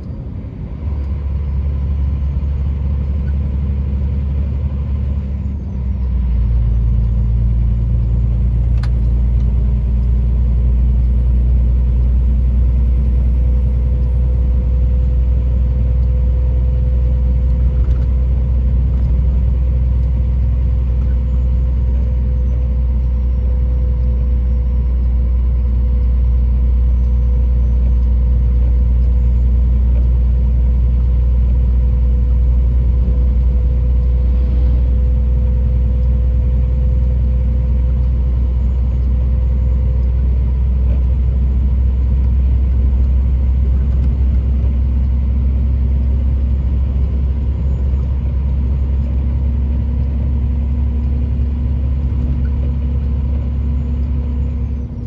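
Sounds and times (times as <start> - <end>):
engine and road noise in cab: 0.0 - 55.0.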